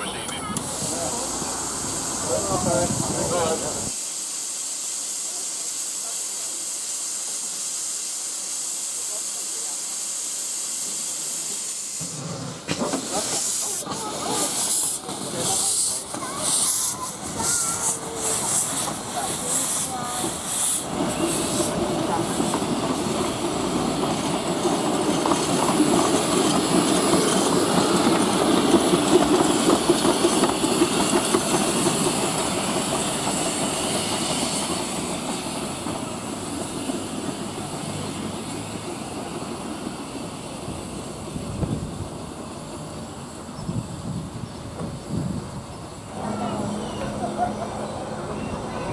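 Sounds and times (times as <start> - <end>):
steam locomotive hissing: 0.0 - 48.9
train wheels rumbling on rail: 0.0 - 48.9
steam locomotive exhaust beats: 0.6 - 48.9.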